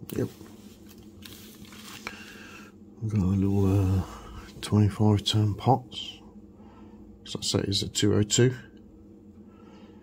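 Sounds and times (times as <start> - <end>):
plastic bag rustling: 0.7 - 2.4.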